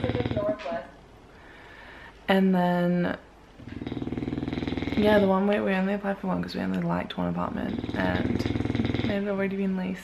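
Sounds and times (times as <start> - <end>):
dog snoring: 0.0 - 0.7, 3.6 - 5.4, 7.4 - 9.4.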